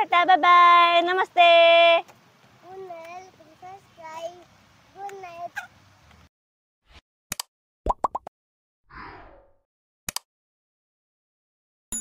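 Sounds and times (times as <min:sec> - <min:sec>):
child's sing-song vocal sounds: 0:02.6 - 0:05.6
sound effect clicks and pops: 0:07.3 - 0:08.3.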